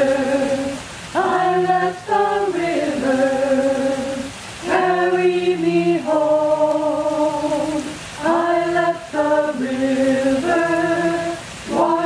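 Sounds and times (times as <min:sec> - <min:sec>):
choir singing a cappella: 0:00.0 - 0:12.0.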